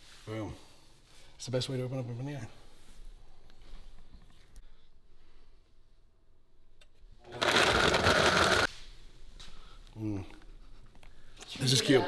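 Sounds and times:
blender running at high speed: 7.3 - 8.7.

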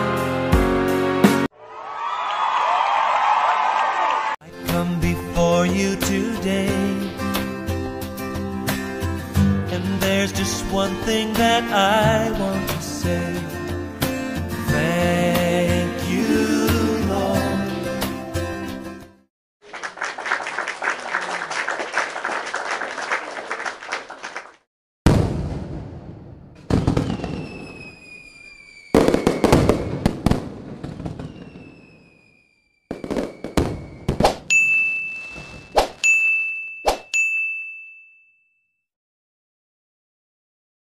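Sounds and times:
falling whistling tones: 26.9 - 30.1, 31.0 - 36.0
high ringing ding: 34.5 - 38.8.

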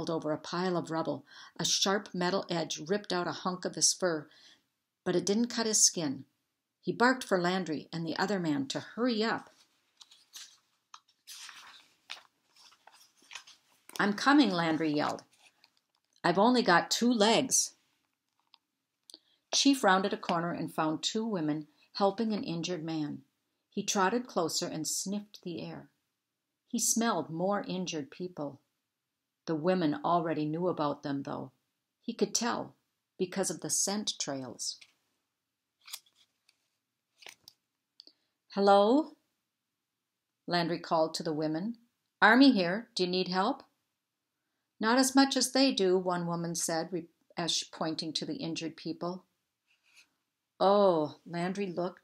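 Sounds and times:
book pages rustling: 9.4 - 16.2, 35.8 - 37.6, 49.7 - 50.1.

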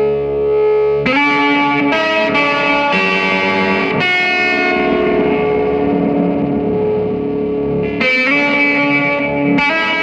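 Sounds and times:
droning distorted guitar chord: 0.0 - 10.0.

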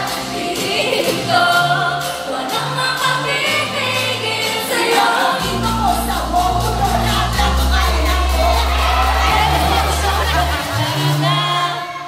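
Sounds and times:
women singing together: 0.0 - 12.0
backing track with heavy bass: 5.3 - 12.0.

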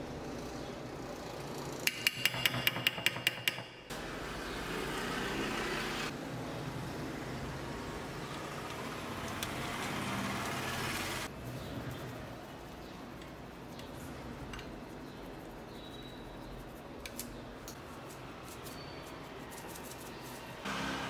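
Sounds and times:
spoon tapping glass dish: 1.9 - 3.7.

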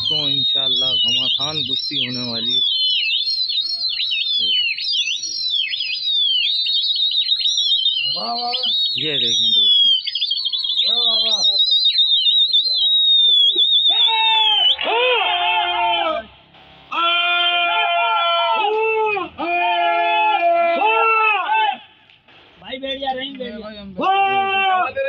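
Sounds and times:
people whistling loudly: 0.0 - 25.0
people shouting: 10.4 - 11.7, 13.5 - 22.0, 24.0 - 25.0.

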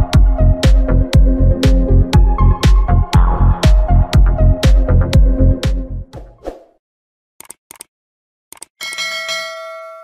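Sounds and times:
notification bell ringing: 8.8 - 10.0.

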